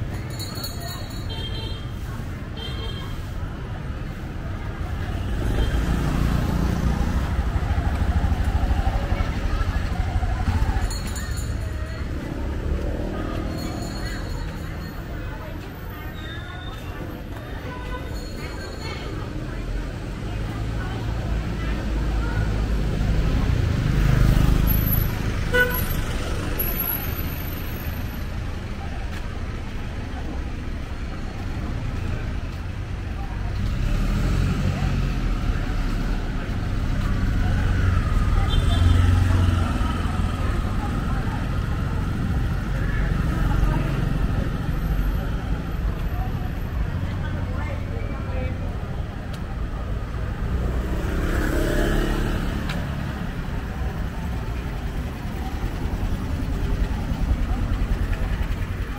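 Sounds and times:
motorbike engines passing: 0.0 - 58.9
people talking on street: 0.0 - 58.9.

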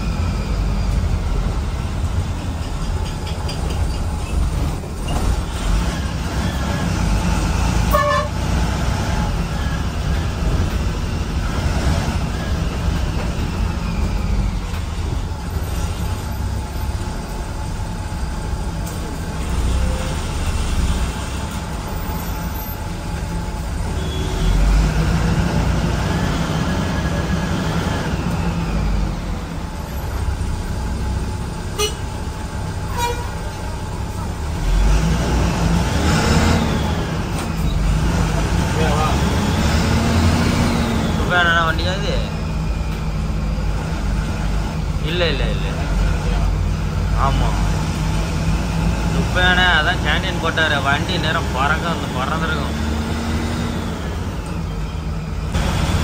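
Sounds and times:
bus diesel engine running: 0.0 - 56.0
vehicle horns tooting: 7.9 - 8.4, 23.9 - 24.7, 31.7 - 32.1, 32.9 - 33.5
voices: 49.0 - 53.0.

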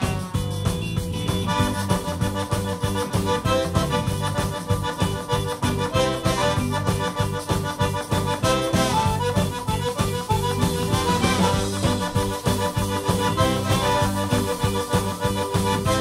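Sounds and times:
accordion repeated notes: 0.0 - 16.0
bass: 0.0 - 16.0
drums: 0.0 - 16.0.

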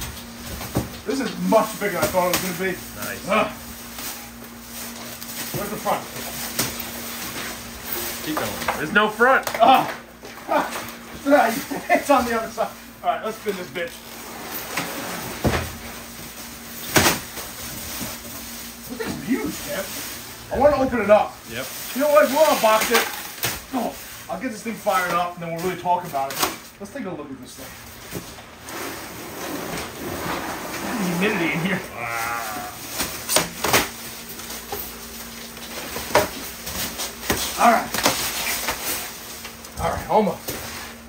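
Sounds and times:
plastic wrapping rustling: 0.0 - 26.9, 27.5 - 41.0.

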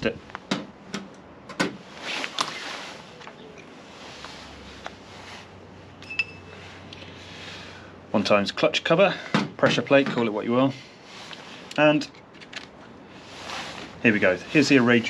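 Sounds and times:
faint metal ring: 6.0 - 6.6.

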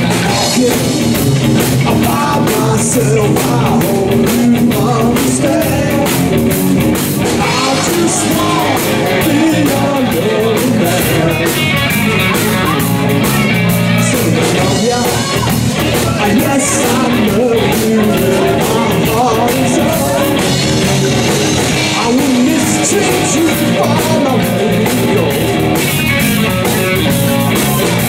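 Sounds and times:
man singing: 0.0 - 6.6, 7.2 - 25.7
blues-rock band playing: 0.0 - 28.0
drum kit: 0.0 - 28.0
electric bass: 0.0 - 28.0
electric guitar: 0.0 - 28.0.

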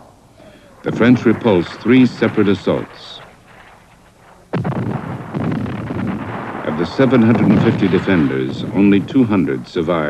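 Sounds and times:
battle noise: 0.0 - 9.9
artillery shell explosion: 0.5 - 10.0.

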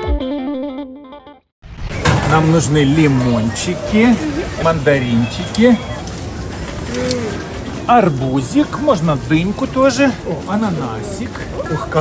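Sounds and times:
supermarket background noise: 2.0 - 12.0.

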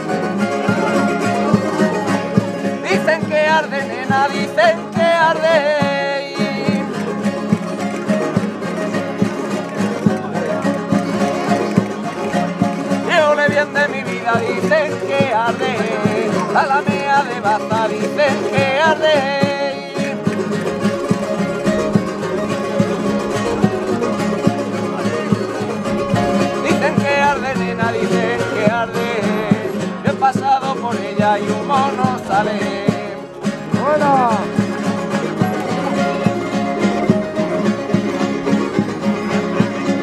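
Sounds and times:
guitars strumming: 0.0 - 40.0
plucked lutes playing melody: 0.0 - 40.0.

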